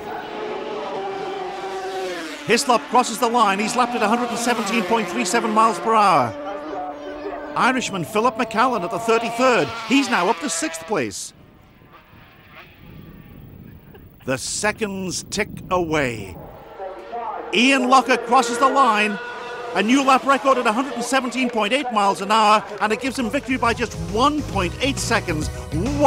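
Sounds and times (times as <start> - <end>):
motorcycle engine at high revs: 0.0 - 11.0, 17.5 - 21.6.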